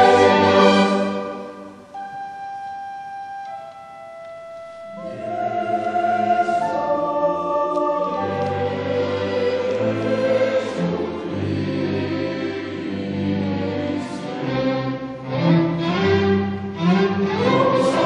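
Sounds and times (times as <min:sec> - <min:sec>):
choir and orchestra: 0:00.0 - 0:02.0, 0:03.6 - 0:18.0.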